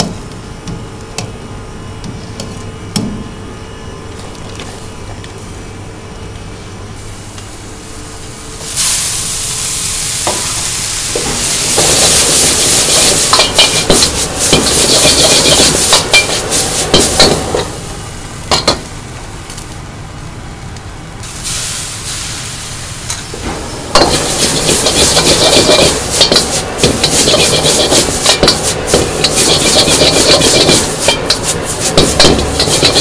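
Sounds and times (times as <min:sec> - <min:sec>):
noodles sizzling in a wok: 0:08.5 - 0:19.6, 0:21.2 - 0:33.0
metal ladle scraping a wok: 0:11.7 - 0:17.8, 0:23.9 - 0:33.0.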